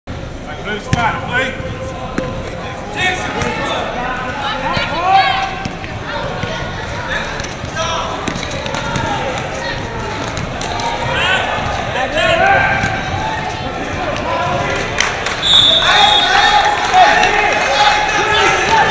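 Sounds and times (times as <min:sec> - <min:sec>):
sneakers squeaking: 0:03.2 - 0:14.8
basketball bouncing on gym floor: 0:07.6 - 0:09.5.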